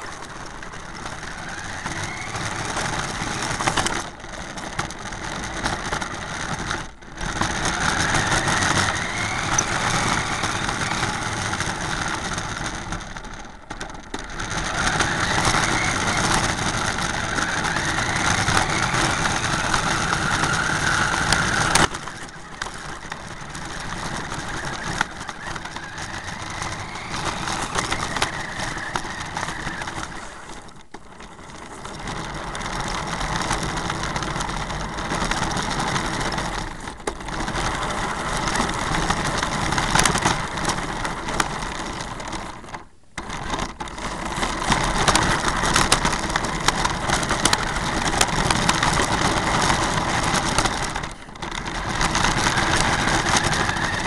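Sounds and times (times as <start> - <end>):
remote control car motor: 0.0 - 54.0.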